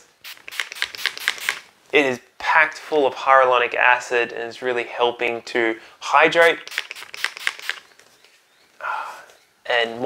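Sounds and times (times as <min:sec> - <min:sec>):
spray bottle hissing: 0:00.2 - 0:01.7, 0:06.4 - 0:07.9.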